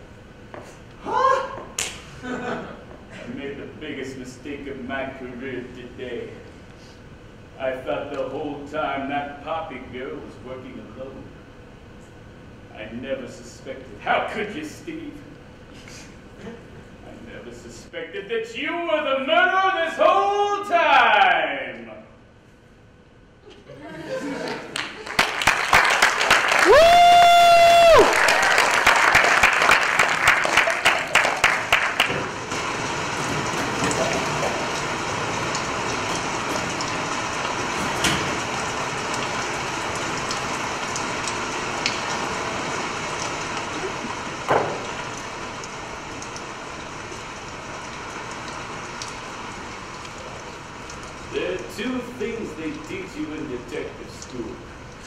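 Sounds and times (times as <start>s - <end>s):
person whooping: 1.0s - 1.8s, 26.5s - 28.4s
audience applauding: 24.3s - 39.3s
rain sound effect: 26.3s - 55.0s.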